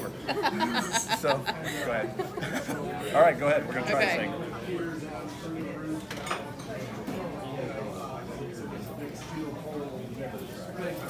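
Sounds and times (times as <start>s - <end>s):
diners chatter: 0.0s - 11.0s
dishes and cutlery clinking: 6.0s - 7.2s.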